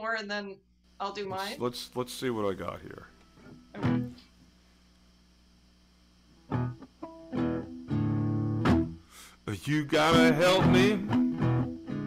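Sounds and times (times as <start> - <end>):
guitar chords and notes: 3.2 - 4.3, 6.4 - 12.0
blues song: 6.5 - 12.0.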